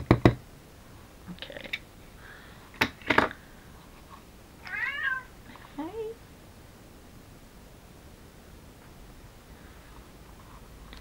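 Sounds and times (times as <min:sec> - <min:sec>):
cat meowing: 0:04.6 - 0:05.3.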